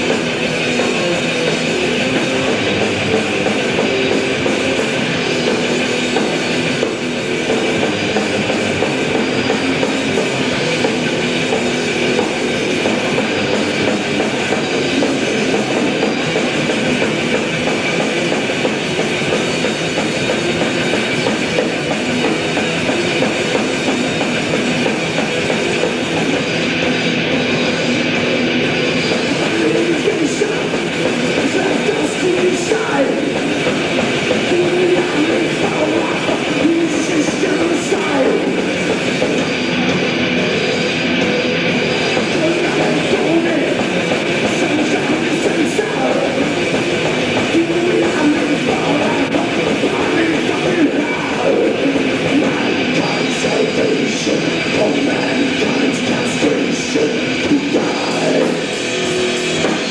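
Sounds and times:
distorted electric guitars: 0.0 - 59.9
drums: 0.0 - 59.9
metal band playing live: 0.0 - 59.9.

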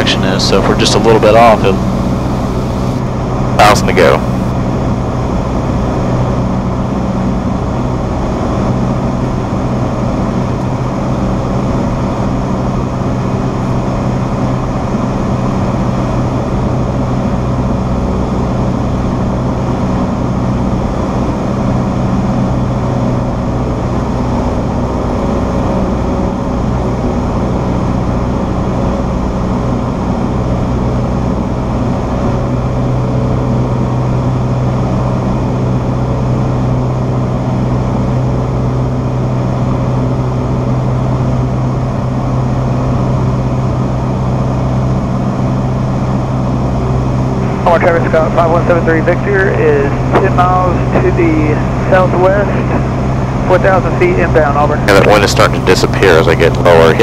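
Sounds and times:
plane engine drone: 0.0 - 57.0.

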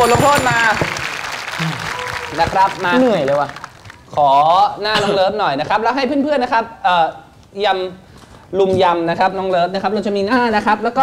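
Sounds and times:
people clapping: 0.0 - 4.2.

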